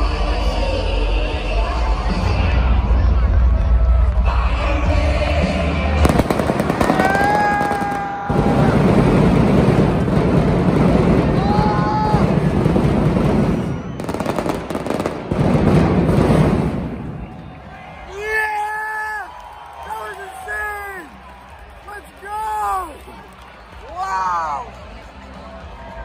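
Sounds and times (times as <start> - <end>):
loud arena music: 0.0 - 26.0
crowd shouting: 6.0 - 15.0, 16.8 - 24.8
crackling firework bangs: 6.0 - 17.4.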